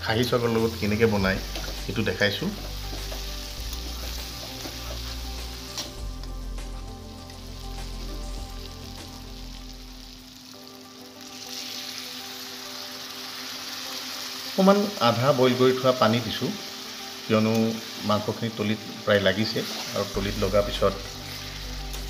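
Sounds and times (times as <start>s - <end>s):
meat and potatoes sizzling in a pan: 0.0s - 22.0s
metal spatula turning food: 0.5s - 6.0s.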